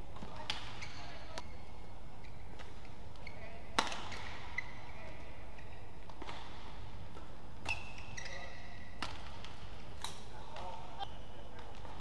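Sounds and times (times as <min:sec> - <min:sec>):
shoe squeaks on court floor: 0:00.7 - 0:01.6, 0:02.2 - 0:05.9, 0:07.6 - 0:09.1.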